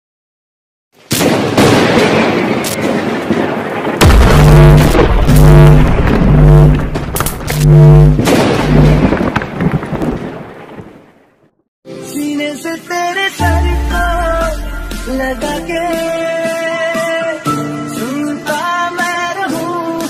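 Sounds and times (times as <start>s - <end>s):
low pulsing tone: 4.0s - 9.1s, 13.4s - 16.1s
deep bass hit: 4.0s - 9.2s, 13.4s - 16.2s
booming impact with rushing tail: 4.0s - 9.5s, 13.4s - 16.2s.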